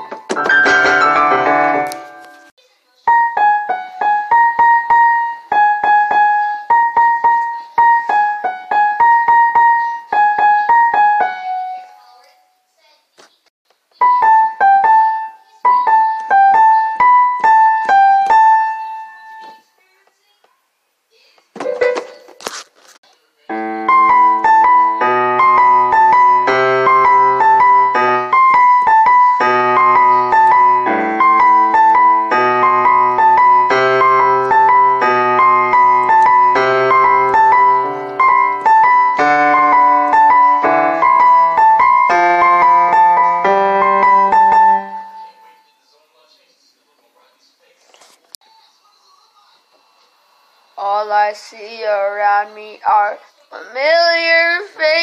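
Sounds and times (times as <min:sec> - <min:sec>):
piano playing: 0:00.0 - 0:12.2, 0:14.0 - 0:19.6, 0:23.5 - 0:45.7.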